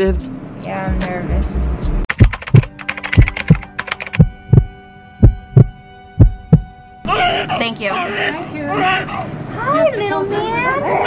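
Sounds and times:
steady hum: 0.8s - 7.9s
heartbeat lub-dub: 0.9s - 6.8s
sharp glitchy clicks: 2.1s - 4.2s.

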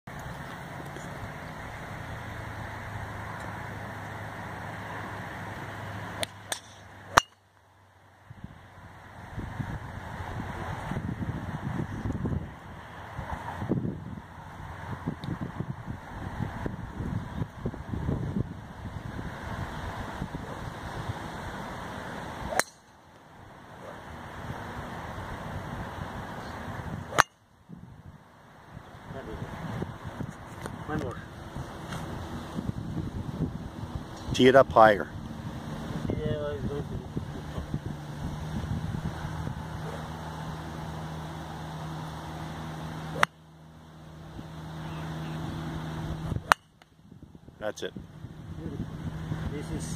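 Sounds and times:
golf driver striking ball: 6.2s - 7.4s, 22.5s - 22.9s, 27.1s - 27.4s, 43.1s - 43.4s, 46.4s - 46.8s
wind noise on microphone: 8.3s - 8.6s, 9.2s - 22.5s, 24.2s - 40.1s, 45.4s - 49.9s.

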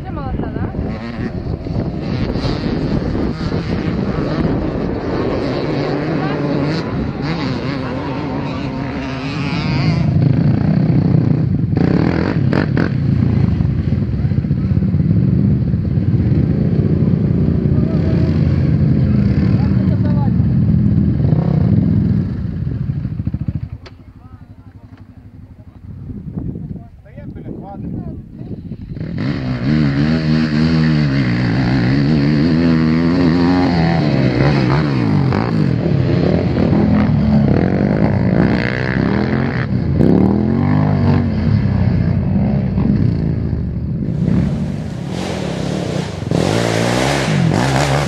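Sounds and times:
motorcycle engine running: 0.0s - 27.0s, 27.6s - 48.0s
quad bike engines revving: 0.0s - 48.0s.

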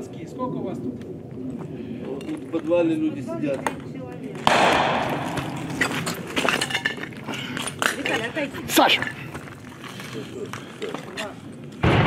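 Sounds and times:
sharp gunfire cracks: 4.4s - 6.3s
loud echoing blast: 4.5s - 6.4s.

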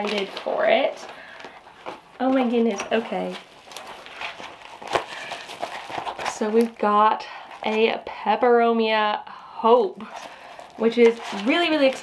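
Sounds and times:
cardboard packing rustling: 0.0s - 7.9s, 10.0s - 12.0s
plastic wrap crinkling: 0.0s - 8.0s, 10.0s - 12.0s.

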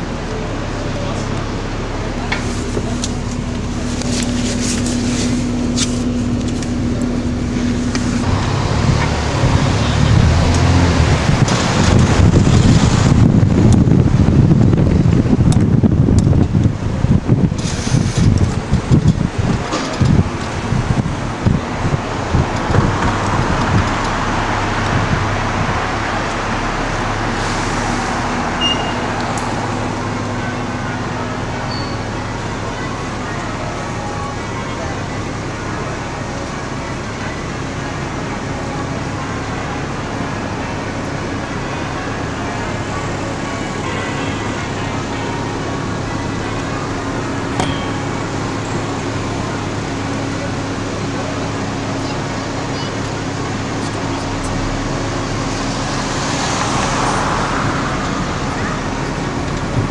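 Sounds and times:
bus engine hum: 0.0s - 59.9s
road noise: 0.0s - 59.9s
street traffic: 0.0s - 59.9s
wind buffeting microphone: 2.7s - 30.4s.

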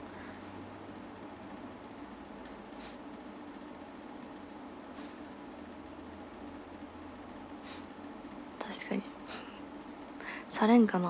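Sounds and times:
woman whispering: 8.6s - 9.5s.

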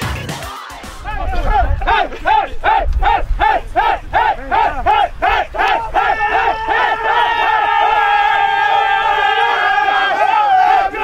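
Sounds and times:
low music beat: 0.0s - 4.1s.

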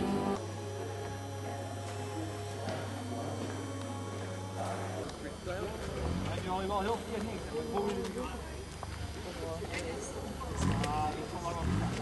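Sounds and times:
faint scattered sounds: 0.0s - 12.0s
steady low hum: 0.0s - 12.0s.

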